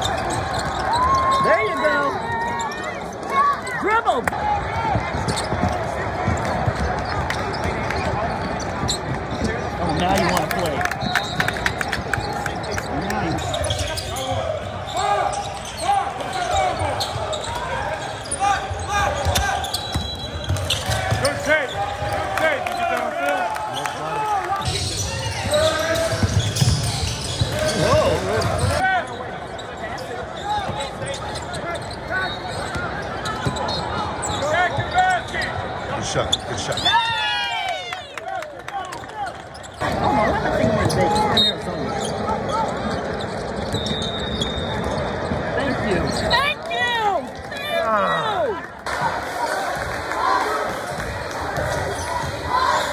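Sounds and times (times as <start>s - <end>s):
players and spectators voices: 0.0s - 52.9s.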